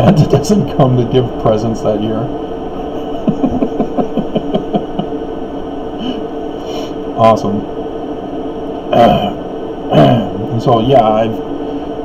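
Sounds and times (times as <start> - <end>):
steady low hum: 0.0 - 12.0
man chuckling: 2.7 - 5.2, 6.0 - 6.3, 8.9 - 10.4
breath: 6.6 - 7.0.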